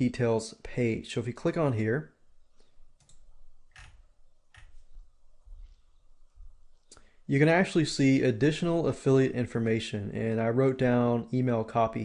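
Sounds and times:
computer mouse clicks: 0:03.0 - 0:04.8.

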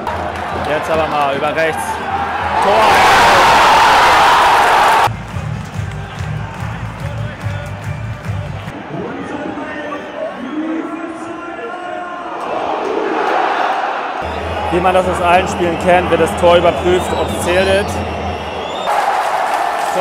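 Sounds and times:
stadium crowd roaring: 0:00.0 - 0:20.0
crowd noise with voices: 0:13.8 - 0:20.0
low pulsing music beat: 0:14.2 - 0:18.9.

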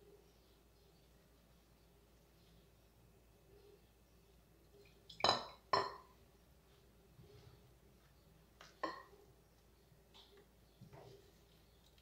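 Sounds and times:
glass clinking against ceramic bowl: 0:05.2 - 0:06.1, 0:08.8 - 0:09.1.

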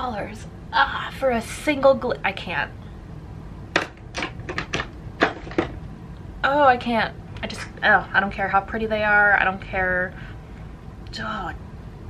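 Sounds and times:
hard objects clicking and tapping: 0:03.7 - 0:05.8.

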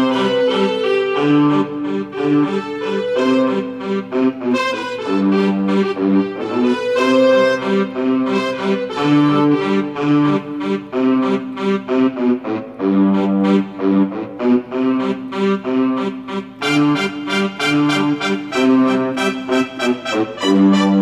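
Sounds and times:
portable keyboard duet: 0:00.0 - 0:21.0.

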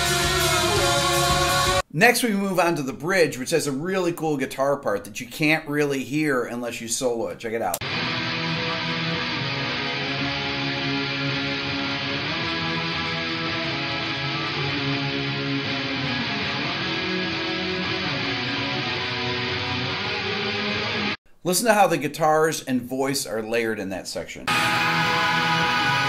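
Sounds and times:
effected electric guitar chords: 0:00.0 - 0:01.8, 0:07.8 - 0:21.2, 0:24.5 - 0:26.0.

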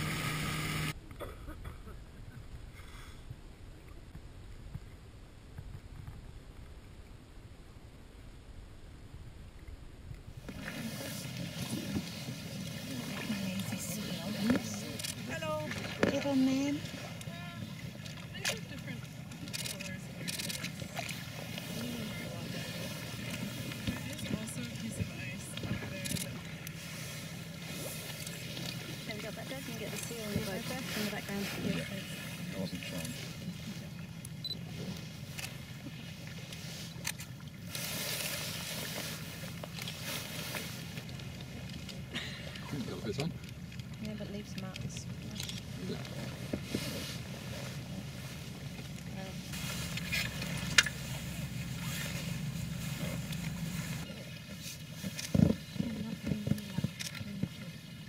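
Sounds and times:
outboard motor running: 0:00.0 - 0:01.0, 0:10.4 - 0:58.0.

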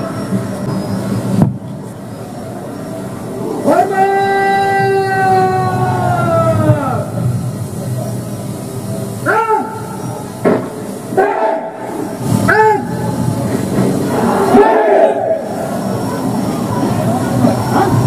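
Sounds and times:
group shouting chant: 0:11.1 - 0:12.1, 0:14.1 - 0:15.5.

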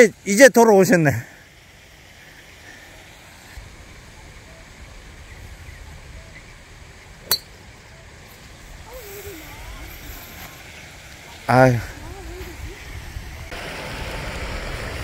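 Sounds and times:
golf club striking ball: 0:07.2 - 0:07.6
wind rumble on microphone: 0:11.9 - 0:15.0.

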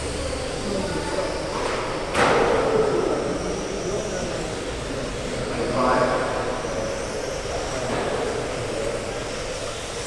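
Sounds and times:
rc car motors whining: 0:00.0 - 0:10.0.

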